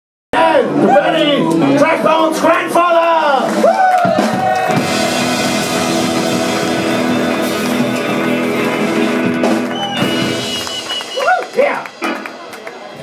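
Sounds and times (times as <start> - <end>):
drums and cymbals: 3.6 - 13.0
electric guitars and bass chord: 4.2 - 11.0.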